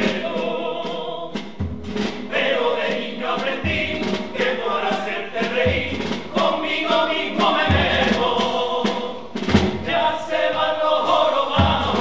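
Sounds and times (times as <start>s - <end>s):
men singing in unison: 0.0s - 1.4s, 2.3s - 12.0s
percussion beat: 0.0s - 12.0s.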